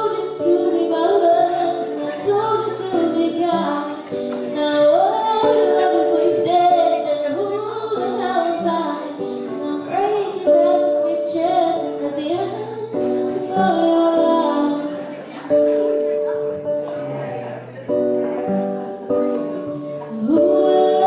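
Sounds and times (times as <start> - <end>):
girl singing into a microphone: 0.0 - 15.8, 18.4 - 21.0
acoustic guitar accompaniment: 0.0 - 21.0.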